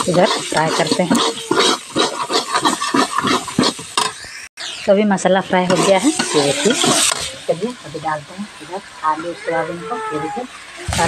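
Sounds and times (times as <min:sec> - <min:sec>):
metal spoon scraping a pan: 0:00.0 - 0:04.2, 0:05.6 - 0:07.8
spices sizzling in oil: 0:00.0 - 0:11.0.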